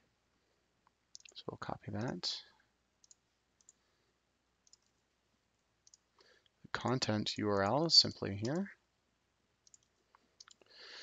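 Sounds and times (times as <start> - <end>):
faint computer mouse clicks: 1.2 - 1.4, 3.0 - 3.8, 4.6 - 5.0, 5.8 - 6.3, 9.6 - 10.7.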